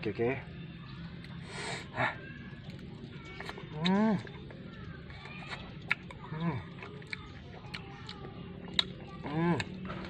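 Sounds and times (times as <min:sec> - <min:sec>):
hissing breath: 0:01.4 - 0:02.0.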